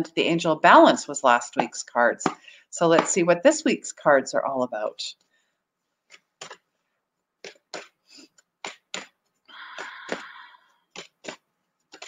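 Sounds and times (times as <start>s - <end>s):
cards shuffling: 6.0s - 6.7s, 7.4s - 12.0s
cards clicking and tapping: 6.1s - 6.6s, 7.4s - 12.0s.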